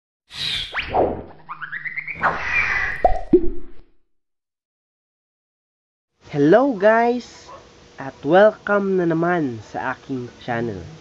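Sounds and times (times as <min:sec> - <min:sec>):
downward-swooping plops: 0:03.0 - 0:03.9.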